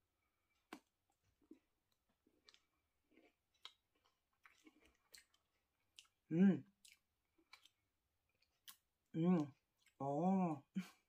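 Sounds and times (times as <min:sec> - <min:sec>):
chewing crispy chocolate bar: 0:00.2 - 0:10.2.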